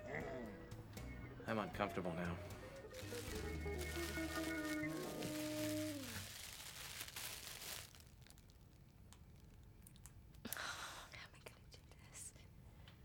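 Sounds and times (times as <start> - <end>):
fabric rustling: 2.9 - 8.6.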